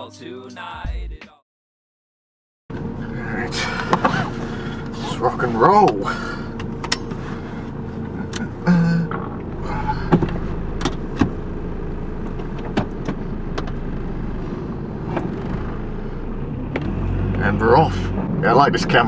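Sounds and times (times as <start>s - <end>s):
car engine idling: 2.7s - 19.0s
clicks and knocks of controls: 6.6s - 7.2s, 10.1s - 11.4s.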